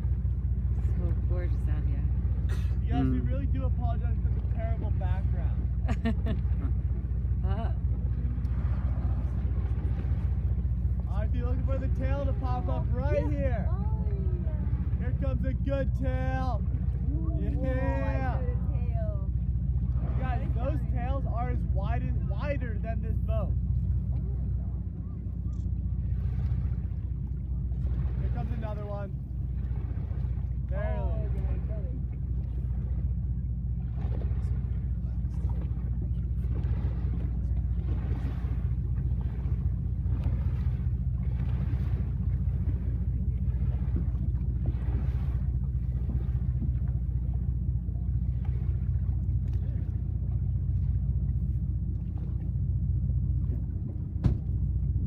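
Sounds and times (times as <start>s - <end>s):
boat engine humming: 0.0s - 55.0s.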